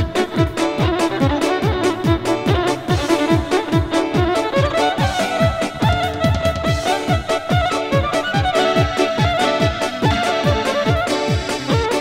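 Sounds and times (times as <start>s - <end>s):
accordion: 0.0s - 12.0s
steady drum beat: 0.0s - 12.0s
violin melody: 0.0s - 12.0s.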